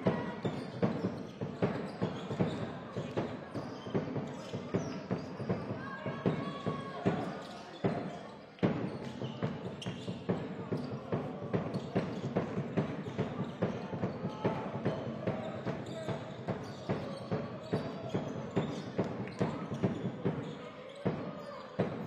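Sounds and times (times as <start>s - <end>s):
players' voices: 1.8s - 22.0s
shoe squeaks on court: 7.3s - 10.9s, 15.6s - 22.0s.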